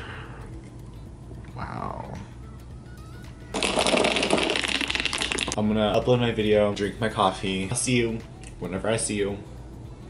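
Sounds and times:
ice rattling in glass jar: 3.6 - 5.6.

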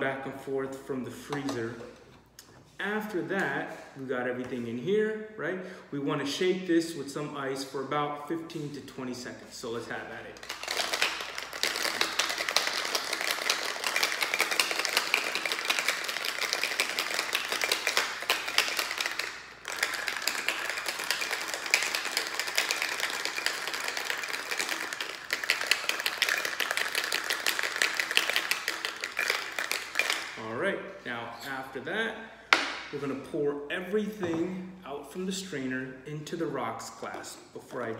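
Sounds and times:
ice rattling in cocktail shaker: 9.7 - 30.4.

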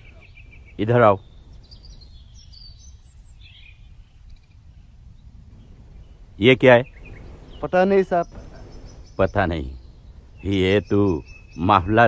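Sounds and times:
birds chirping: 0.0 - 12.0
outdoor background noise: 0.0 - 12.0.

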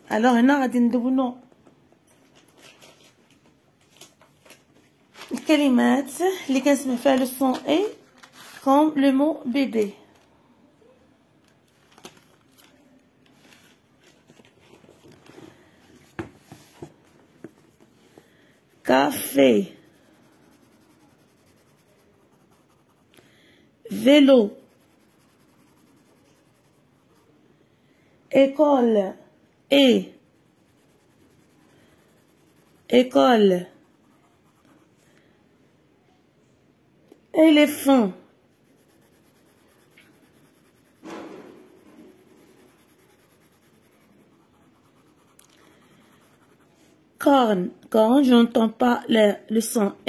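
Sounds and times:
pencil scratching on paper: 16.4 - 23.2, 23.9 - 27.3, 29.8 - 34.9, 37.6 - 47.0.

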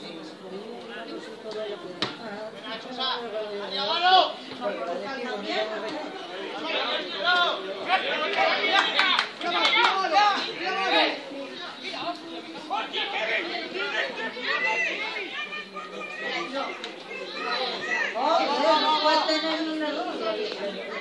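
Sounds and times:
spectators talking: 0.0 - 21.0
footballers shouting: 5.4 - 21.0.

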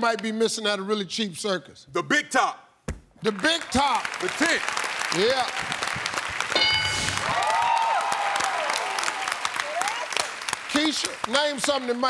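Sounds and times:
audience applauding and cheering: 3.2 - 12.0
crowd whooping: 6.5 - 10.4
bright high chime: 6.6 - 7.4.

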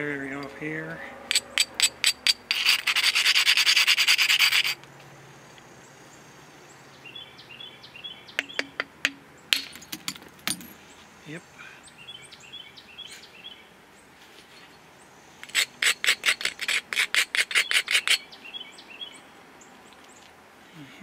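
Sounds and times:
stone scratching on flint: 1.3 - 4.8, 15.4 - 18.2
bird chirping: 5.5 - 15.1, 17.5 - 20.3.

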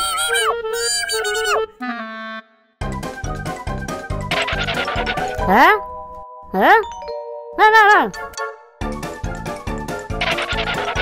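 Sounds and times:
cartoon vocal sounds: 0.0 - 1.8.

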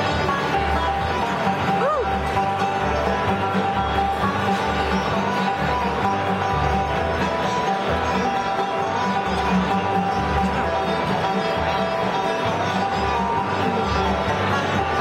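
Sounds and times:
acoustic guitar strumming: 0.0 - 15.0
plucked strings: 0.0 - 15.0
upright bass notes: 0.0 - 15.0.

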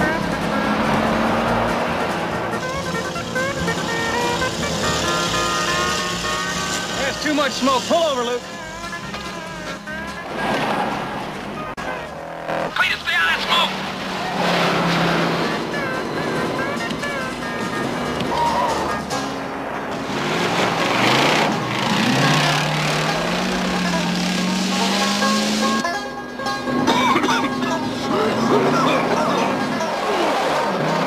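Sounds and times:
race car engines running hard: 0.0 - 31.0
tv music score: 0.0 - 31.0.

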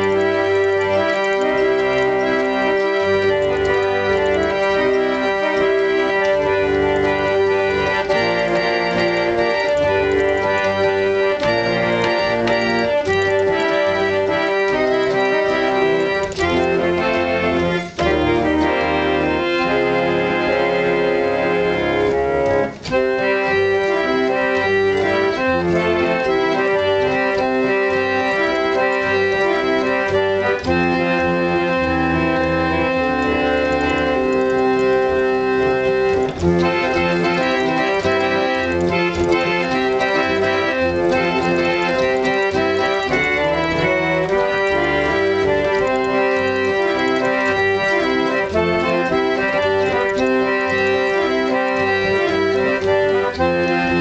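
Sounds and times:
reed organ playing chords: 0.0 - 54.0.

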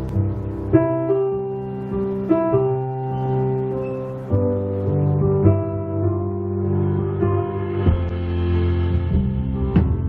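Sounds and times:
keyboard chords: 0.0 - 10.0
bass guitar: 6.6 - 10.0.

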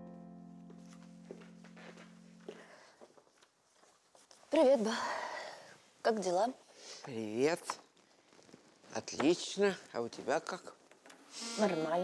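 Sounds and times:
soft background music: 0.0 - 3.0.

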